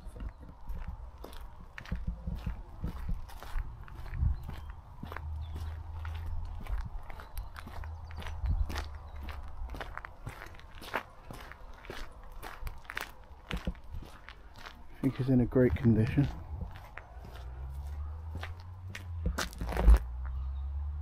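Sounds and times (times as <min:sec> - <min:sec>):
footsteps crunching on gravel: 0:00.0 - 0:20.2.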